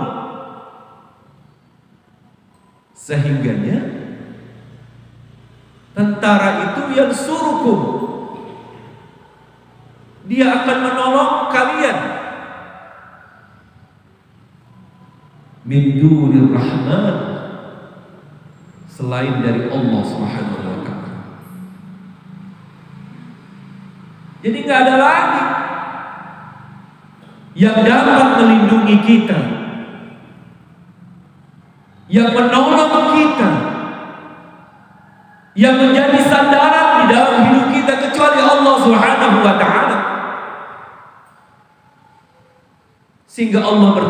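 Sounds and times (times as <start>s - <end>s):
man's voice echoing over loudspeakers: 0.0s - 1.3s, 3.0s - 13.7s, 15.5s - 21.6s, 22.9s - 30.6s, 32.0s - 41.5s, 43.3s - 44.0s.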